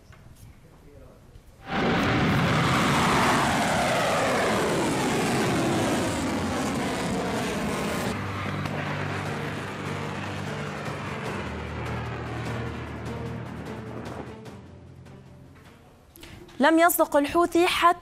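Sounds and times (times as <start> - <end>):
rocket motor roaring: 1.6 - 14.5.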